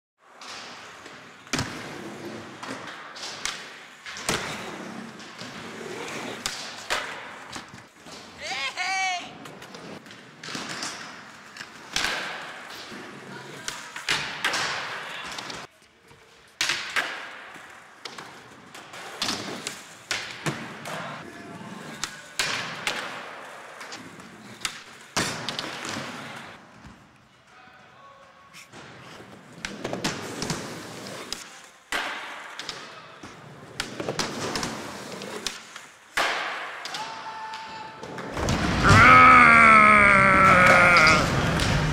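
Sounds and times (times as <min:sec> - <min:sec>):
skateboard wheels rolling: 0:00.2 - 0:27.1, 0:28.7 - 0:36.8, 0:40.3 - 0:41.9
skateboard impacts: 0:00.3 - 0:08.4, 0:09.4 - 0:15.7, 0:16.6 - 0:21.2, 0:21.9 - 0:27.0, 0:28.7 - 0:37.1, 0:38.0 - 0:39.2, 0:40.3 - 0:41.9.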